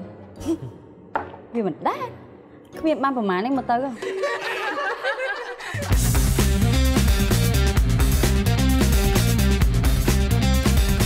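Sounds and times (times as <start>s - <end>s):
person breathy vocal sounds: 0.4s - 0.9s.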